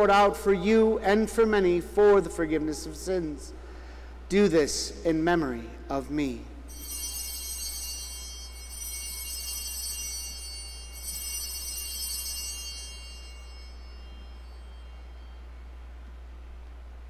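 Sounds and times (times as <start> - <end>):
steady low hum: 0.0 - 17.0
small high-pitched bells ringing: 6.7 - 16.1.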